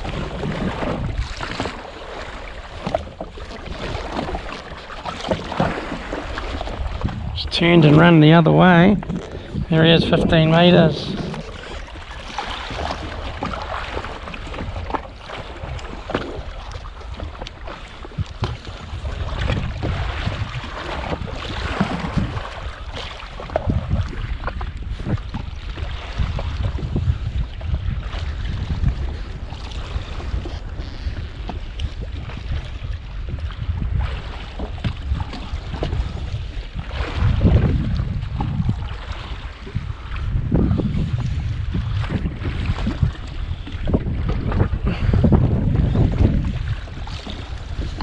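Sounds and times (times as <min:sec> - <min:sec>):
water lapping: 0:00.0 - 0:48.0
wind buffeting microphone: 0:00.0 - 0:48.0.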